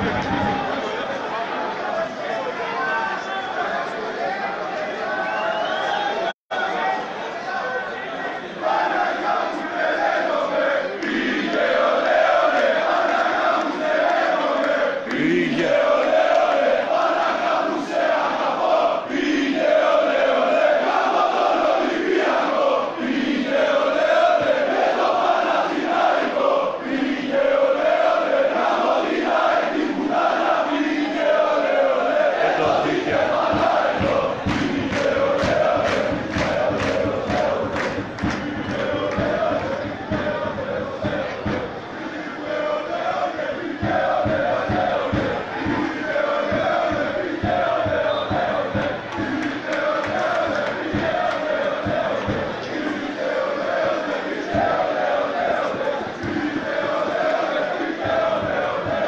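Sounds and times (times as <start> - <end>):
crowd chanting: 0.0 - 59.0
rhythmic drum beat: 15.1 - 17.1, 32.4 - 59.0.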